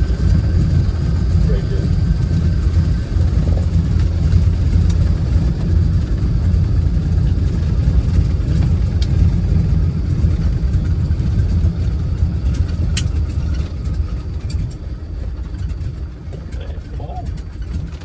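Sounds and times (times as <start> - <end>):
aircraft engine rumble: 0.0 - 18.0.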